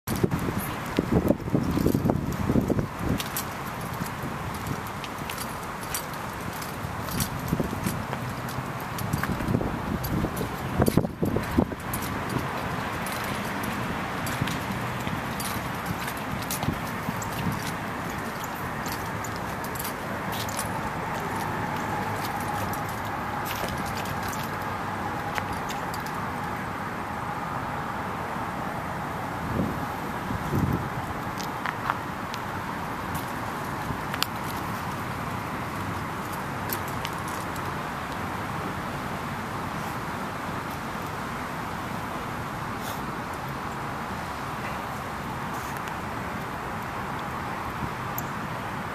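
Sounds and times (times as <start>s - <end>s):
outdoor background noise: 0.0s - 48.9s
sandal footsteps on asphalt: 0.1s - 26.8s, 29.5s - 38.2s
dog gear jingling: 1.5s - 26.6s.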